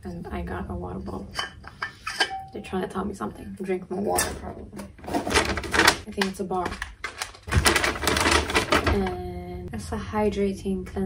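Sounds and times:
paper bag rustling: 6.7s - 9.1s.

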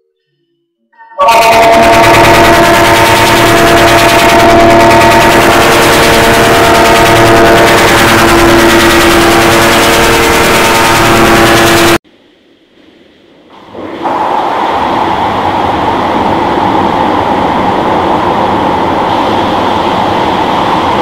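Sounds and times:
distorted harsh rattling buzz: 1.3s - 13.5s.

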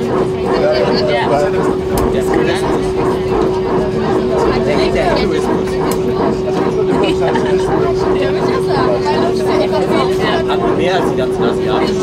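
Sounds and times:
aircraft cabin engine drone: 0.0s - 12.0s
passengers talking: 0.0s - 12.0s.

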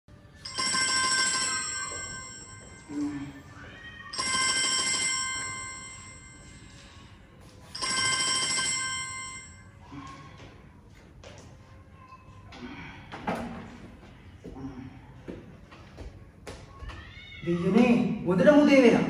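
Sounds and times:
bell ringing: 0.4s - 3.1s, 4.1s - 6.8s, 7.7s - 9.7s.

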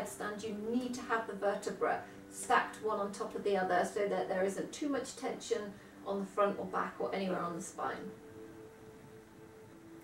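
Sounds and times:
faint steady held tones: 0.0s - 10.0s.

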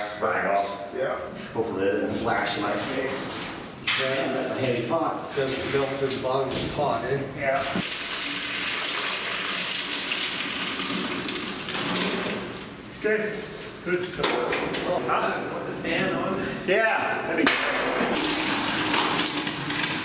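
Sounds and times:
molten metal pouring hiss: 7.8s - 12.8s, 18.2s - 20.0s.

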